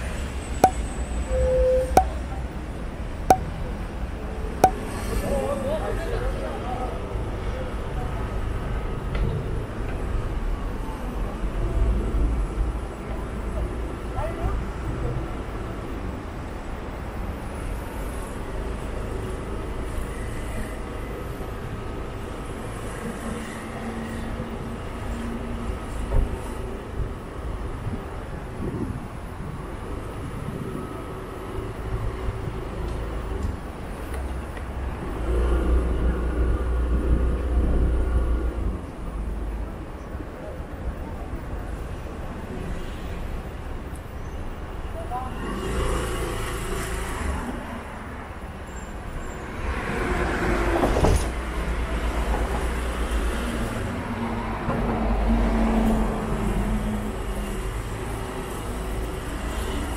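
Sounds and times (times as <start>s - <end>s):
cars passing: 0.0s - 59.9s
low traffic rumble: 0.0s - 59.9s.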